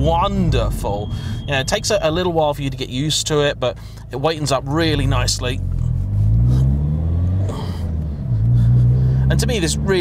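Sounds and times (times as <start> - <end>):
car engine accelerating: 0.0 - 10.0.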